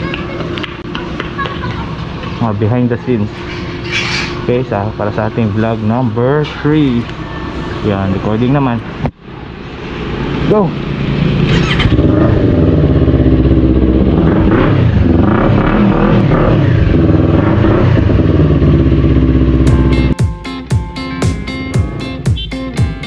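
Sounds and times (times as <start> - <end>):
motorcycle engine running loudly: 10.0 - 20.2
strummed guitar music: 19.6 - 23.0.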